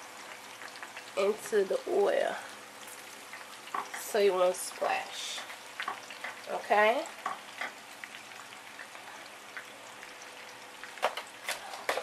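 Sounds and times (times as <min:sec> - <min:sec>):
potatoes sizzling in oil: 0:00.0 - 0:12.0.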